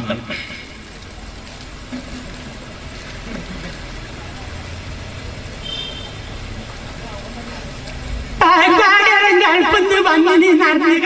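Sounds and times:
low rumble and hiss: 0:00.0 - 0:11.0
faint distant voices: 0:00.9 - 0:05.7.

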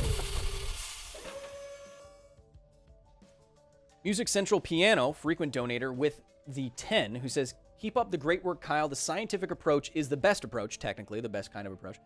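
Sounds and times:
hiss: 0:00.0 - 0:02.2.

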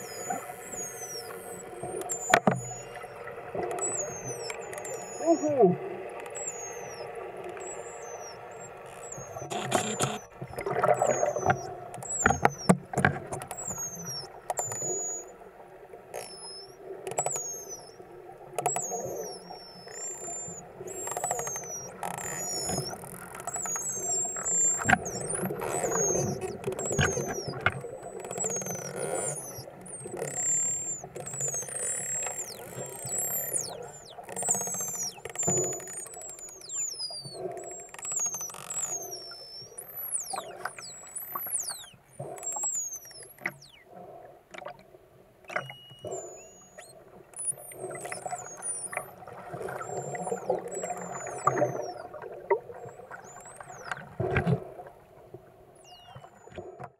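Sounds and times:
underwater rush: 0:00.0 - 0:16.1, 0:47.0 - 0:55.5
whales whistling underwater: 0:00.0 - 0:44.8, 0:45.5 - 0:55.1, 0:55.7 - 0:56.9
whale clicks: 0:00.0 - 0:56.9.

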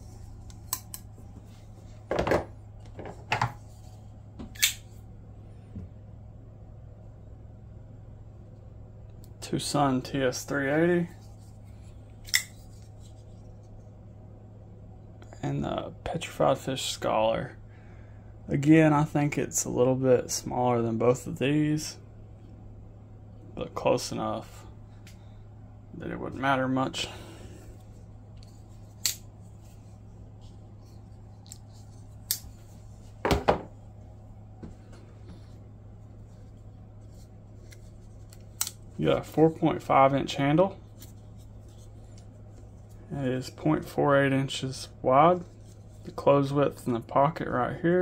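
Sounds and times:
faint low hum: 0:00.0 - 0:48.0.

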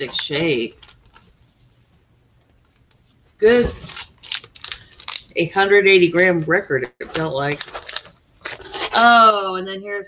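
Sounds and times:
paper sleeve rustling: 0:03.4 - 0:05.3, 0:07.1 - 0:09.1.

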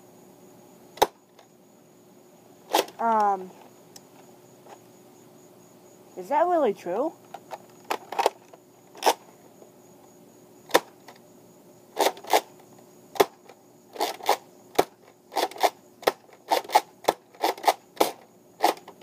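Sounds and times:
toy blaster plastic clicks: 0:14.0 - 0:19.0.

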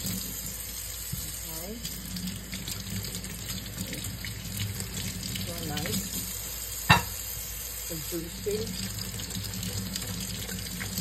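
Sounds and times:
tap water running into sink: 0:00.0 - 0:11.0.

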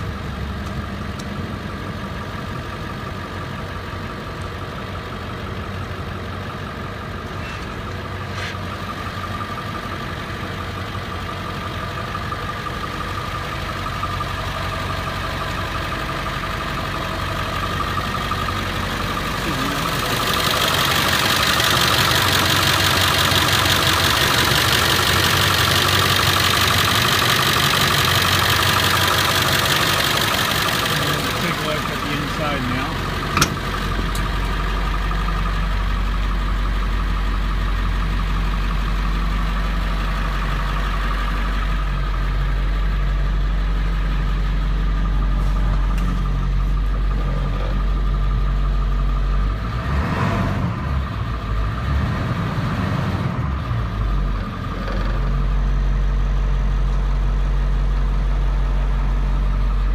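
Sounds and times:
diesel truck engine idling: 0:00.0 - 0:59.9.

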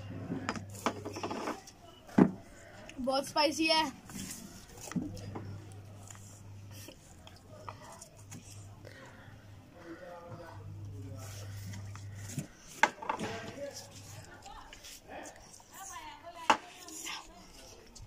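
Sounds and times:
murmured voices: 0:04.0 - 0:18.0.

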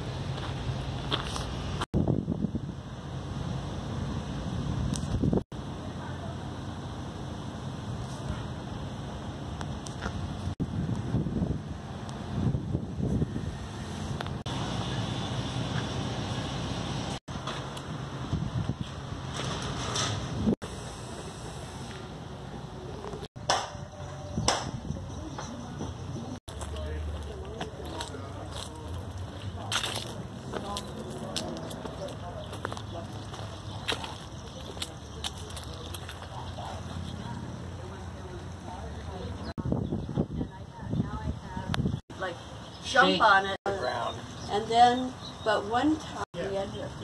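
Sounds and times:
wind noise on microphone: 0:00.8 - 0:03.1, 0:03.9 - 0:05.4, 0:09.6 - 0:14.4, 0:18.0 - 0:20.6, 0:23.2 - 0:26.4, 0:39.5 - 0:42.1
indistinct voices: 0:20.7 - 0:47.0.

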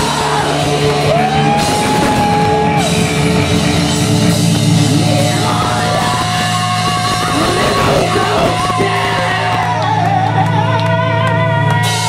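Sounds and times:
person singing: 0:00.0 - 0:02.9, 0:04.7 - 0:12.0
drums: 0:00.0 - 0:12.0
electric guitars playing chords: 0:00.0 - 0:12.0.

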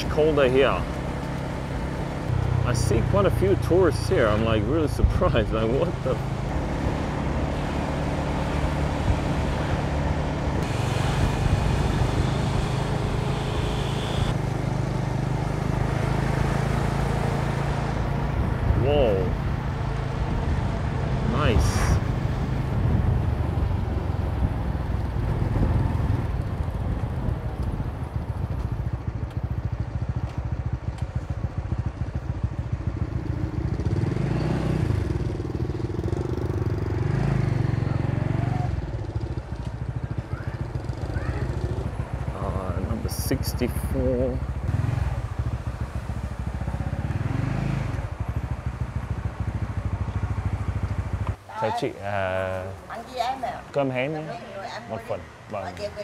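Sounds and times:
road and wind noise: 0:00.0 - 0:56.0
motorbike engine running: 0:24.4 - 0:51.5.

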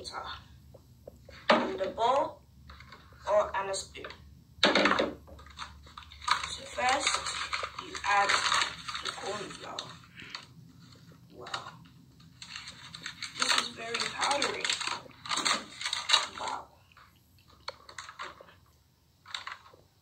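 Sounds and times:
paper bag crinkling and rustling: 0:05.3 - 0:16.7, 0:17.5 - 0:18.6, 0:19.2 - 0:19.9.

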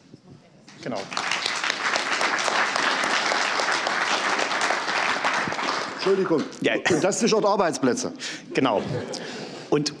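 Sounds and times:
audience applauding: 0:00.8 - 0:06.4.

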